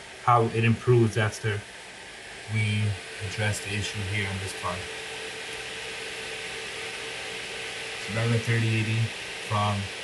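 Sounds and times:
cooling fans whooshing: 0:00.0 - 0:10.0
faint steady hum: 0:00.0 - 0:10.0.

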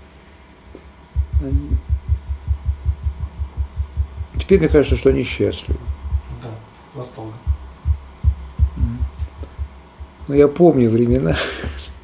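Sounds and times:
low hum: 0:01.1 - 0:06.4, 0:07.3 - 0:11.2
soft low thuds: 0:01.1 - 0:06.4, 0:07.4 - 0:10.5.

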